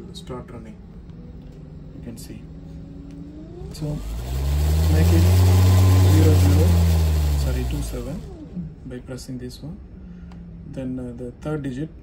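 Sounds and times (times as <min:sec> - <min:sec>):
fan motor whine: 0:00.0 - 0:12.0.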